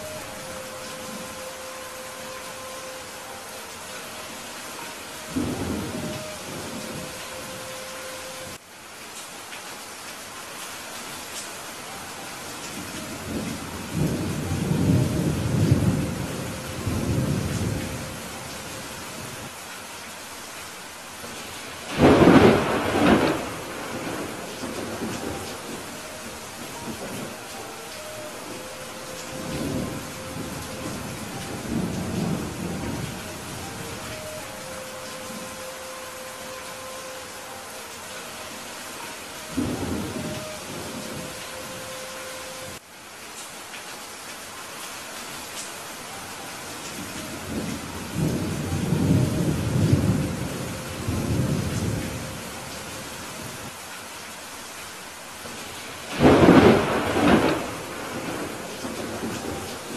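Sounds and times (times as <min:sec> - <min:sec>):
steady rainfall: 0:00.0 - 0:59.9
thunder rumbling: 0:21.8 - 0:36.6, 0:39.0 - 0:41.8, 0:56.1 - 0:59.9.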